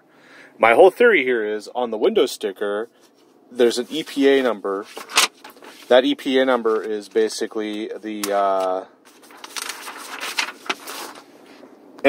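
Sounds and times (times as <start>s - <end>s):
paper rustling and crinkling: 3.0s - 11.7s.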